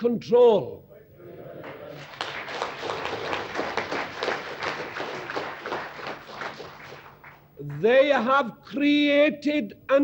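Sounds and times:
crowd applauding: 1.6 - 7.9.

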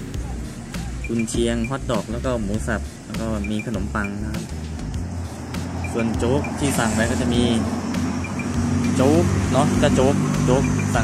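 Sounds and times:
vehicle engine running: 0.0 - 11.0
man speaking: 0.2 - 4.6, 5.9 - 7.7, 8.8 - 11.0.

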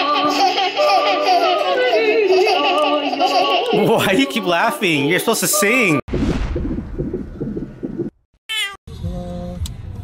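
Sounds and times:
low fluttering rumble: 6.1 - 8.2.

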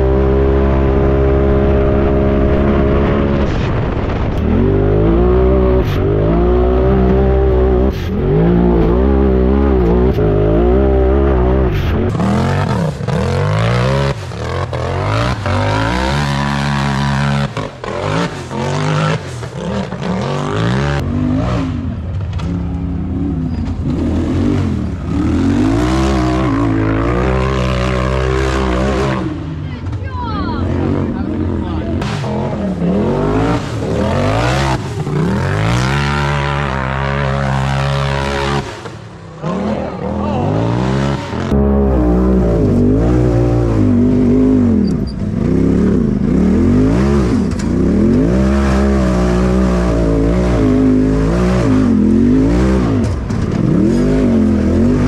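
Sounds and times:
utv engines revving hard: 0.0 - 55.0.

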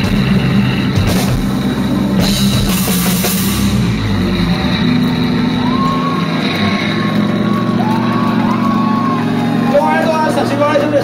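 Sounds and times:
amplifiers humming: 0.0 - 11.0
voices calling out: 4.6 - 11.0.

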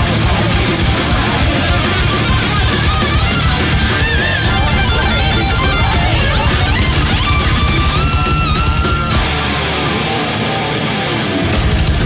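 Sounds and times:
heavy metal music: 0.0 - 12.0
lead electric guitar bending notes: 0.0 - 12.0.

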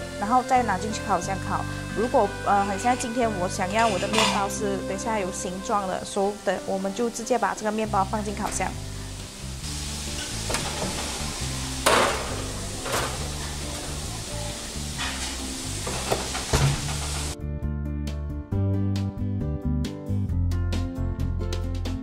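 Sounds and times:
background music: 0.0 - 22.0
steady hiss: 7.6 - 17.4.

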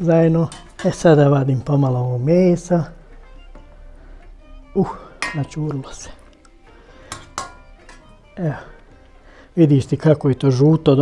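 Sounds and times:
faint background music: 0.0 - 11.0
metal utensil clinking on pot: 0.4 - 1.2, 5.2 - 6.4, 7.0 - 8.2.

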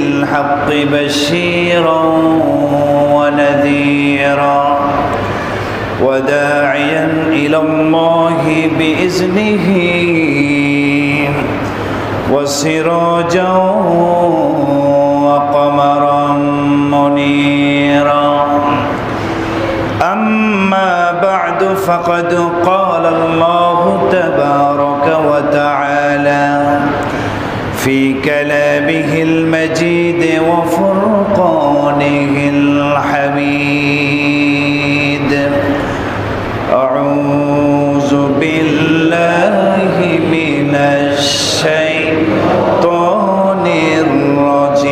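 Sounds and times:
man chanting melodically: 0.0 - 44.9.

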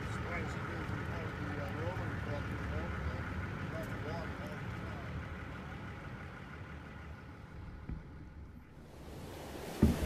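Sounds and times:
distant voices calling: 0.0 - 10.0
motorboat idling: 0.0 - 10.0.

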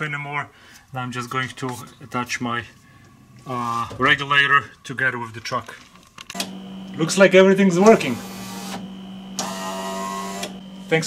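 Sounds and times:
power window motor whirring: 6.3 - 7.2, 7.8 - 11.0.

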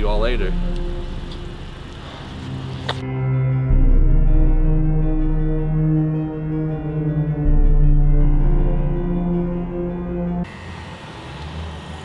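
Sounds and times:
car engine idling: 0.0 - 3.0
eerie horror music: 0.0 - 12.0.

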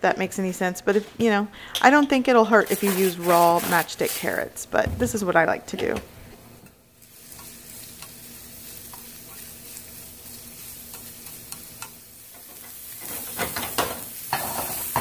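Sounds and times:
carrots sizzling in a pan: 6.9 - 15.0.

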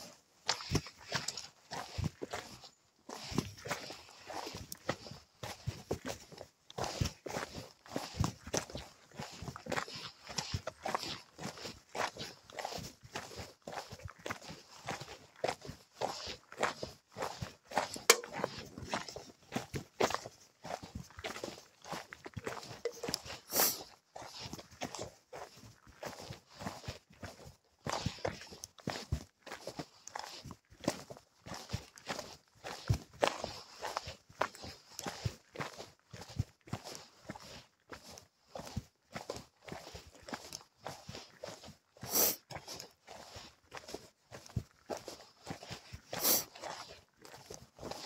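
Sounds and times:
footsteps on trail: 0.0 - 48.0.

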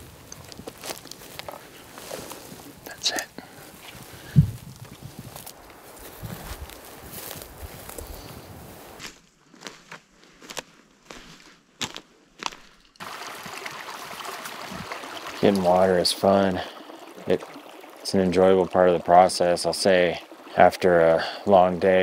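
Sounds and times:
running creek water: 0.0 - 9.0, 12.8 - 22.0
footsteps rustling brush: 0.0 - 15.9
heavy thump: 4.3 - 4.6.

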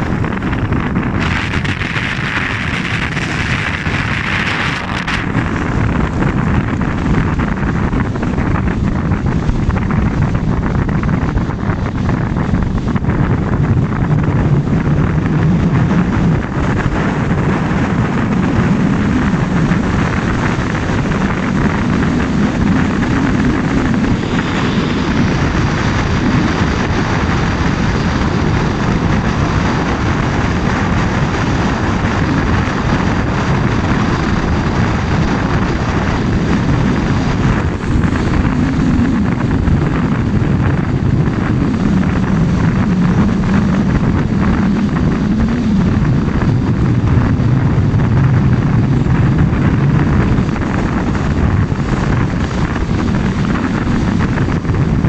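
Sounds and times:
vehicle engine and road noise: 0.0 - 55.0.

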